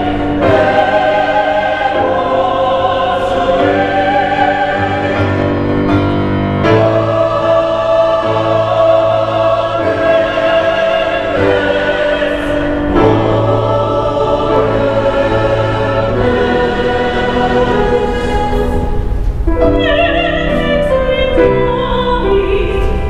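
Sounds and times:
mixed choir singing chords: 0.0s - 23.0s.

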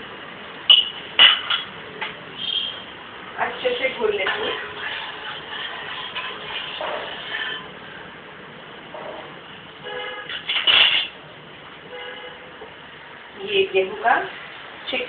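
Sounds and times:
spoon scraping in steel pots: 3.6s - 8.0s, 10.3s - 11.2s.

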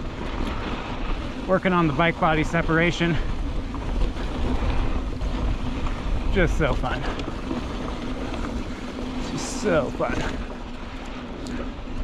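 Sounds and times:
bike tyres on loose dirt: 0.0s - 12.0s.

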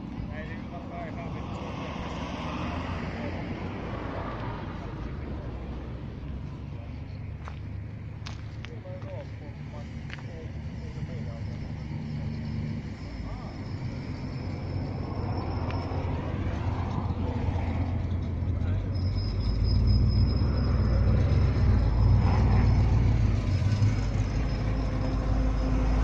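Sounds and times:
vehicle engine rumbling: 0.0s - 26.0s.

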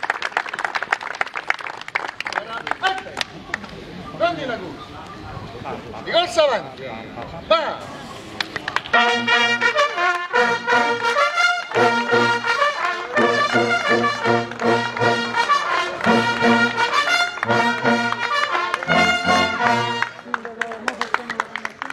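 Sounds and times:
military brass fanfare: 8.9s - 20.3s.

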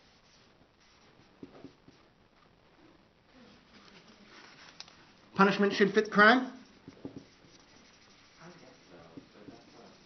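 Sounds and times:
marker writing on whiteboard: 0.0s - 2.1s, 4.3s - 10.0s.

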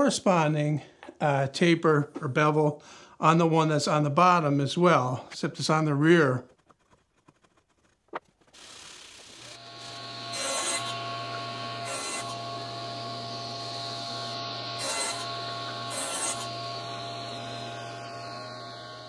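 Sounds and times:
saw cutting wood: 8.4s - 19.0s
table saw running: 8.6s - 19.0s.

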